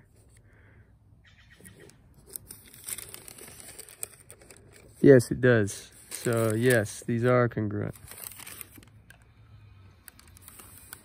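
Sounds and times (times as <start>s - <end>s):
tracing paper rustling: 1.6s - 11.0s.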